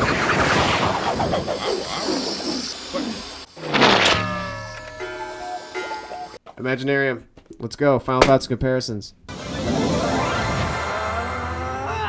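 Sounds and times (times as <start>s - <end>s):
falling tones: 0.0s - 6.4s, 9.3s - 12.0s.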